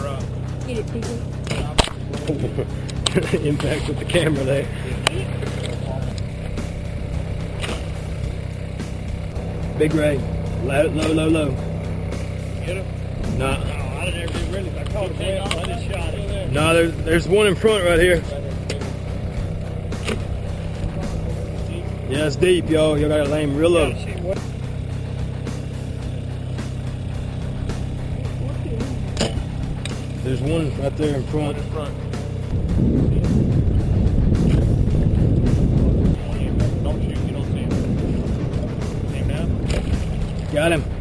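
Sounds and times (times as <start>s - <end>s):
boat motor drone: 0.0s - 41.0s.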